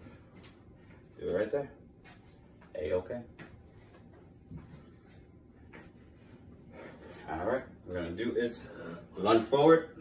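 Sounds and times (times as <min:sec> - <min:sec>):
man breathing faintly: 0:06.0 - 0:07.3.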